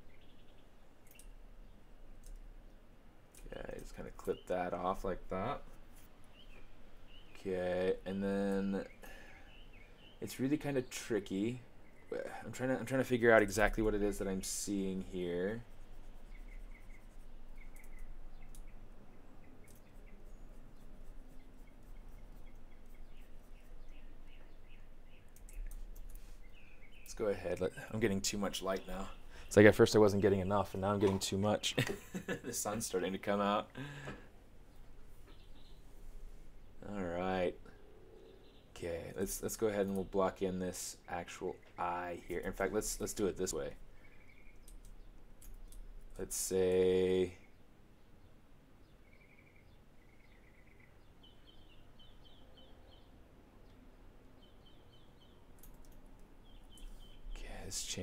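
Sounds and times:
small bird chirping: 0.0s - 34.1s, 34.7s - 58.0s
steady low hum: 0.0s - 48.1s
light clicks: 1.0s - 1.4s.

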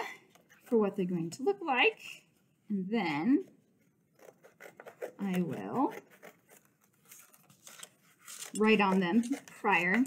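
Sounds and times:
scissors cutting cardstock: 4.2s - 10.0s
paper handling: 5.4s - 10.0s.

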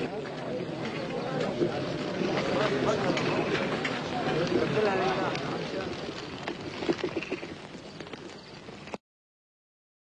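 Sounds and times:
footsteps on hard ground: 0.0s - 9.0s.

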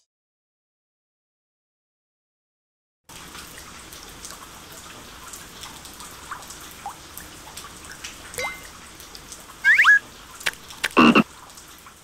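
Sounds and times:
quick rising squeaks: 9.6s - 10.0s
cartoon frog croak: 9.7s - 10.0s, 10.8s - 11.2s.

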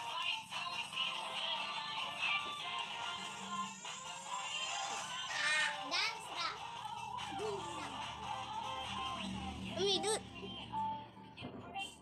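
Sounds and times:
music with steady beat: 0.0s - 5.2s, 5.9s - 11.7s
child's high-pitched voice: 5.2s - 6.6s, 7.3s - 8.0s, 9.8s - 10.2s.

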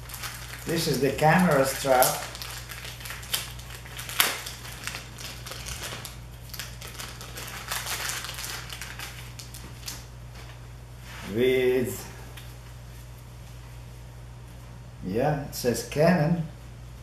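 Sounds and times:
plastic bag crinkling: 0.0s - 10.6s
steady low hum: 0.0s - 17.0s.

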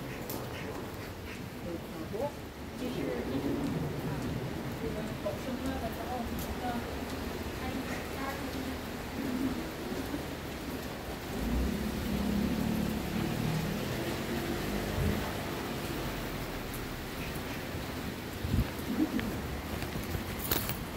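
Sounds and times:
street noise: 0.0s - 20.9s.

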